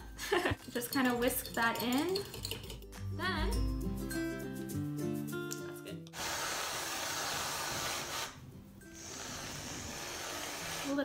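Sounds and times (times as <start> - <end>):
background music: 0.0 - 11.0
whipped cream can spraying: 6.2 - 8.4, 9.0 - 11.0.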